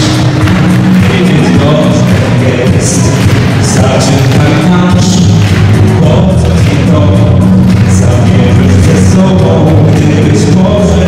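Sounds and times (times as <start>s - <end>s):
amplified backing music: 0.0s - 11.0s
group singing pop song: 0.0s - 11.0s
heavy bass line: 0.0s - 11.0s.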